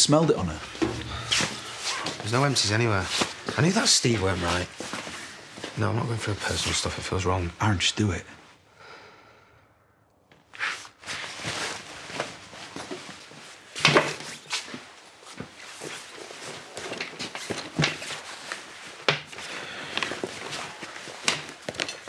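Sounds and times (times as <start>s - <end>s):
footsteps on hard floor: 0.7s - 3.6s.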